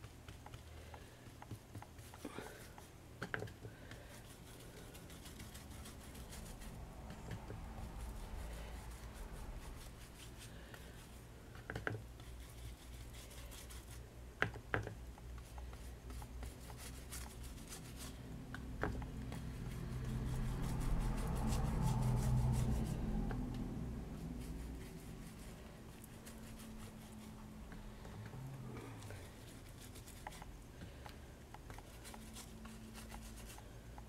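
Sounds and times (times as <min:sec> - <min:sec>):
paintbrush scrubbing bamboo mat: 0:03.9 - 0:14.1, 0:15.4 - 0:28.0.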